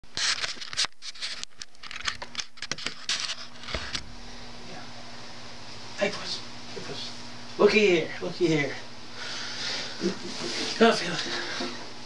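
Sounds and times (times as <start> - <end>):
faint steady hum: 1.4 - 12.0.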